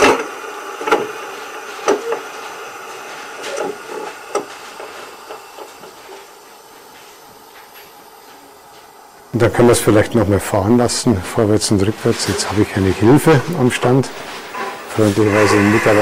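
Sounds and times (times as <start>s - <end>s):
model steam locomotive hiss: 0.0s - 16.0s.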